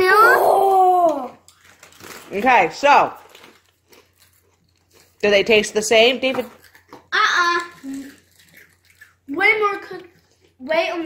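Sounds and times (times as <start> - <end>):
child's drawn-out exclamation: 0.0 - 1.4.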